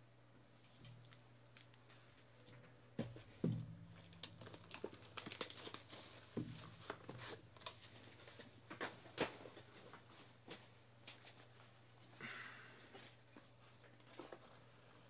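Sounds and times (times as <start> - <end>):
plastic wrap tearing and crinkling: 4.0 - 7.8.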